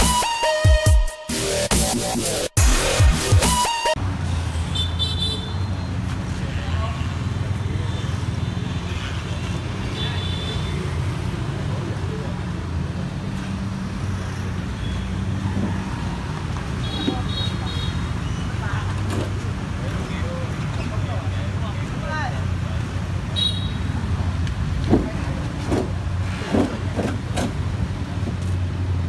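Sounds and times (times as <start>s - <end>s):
electronic intro music: 0.0s - 4.0s.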